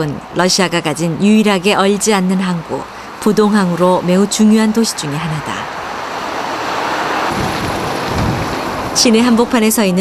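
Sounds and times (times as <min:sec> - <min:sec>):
low rumbling gusts: 0:00.0 - 0:10.0
wind on microphone: 0:07.3 - 0:09.5.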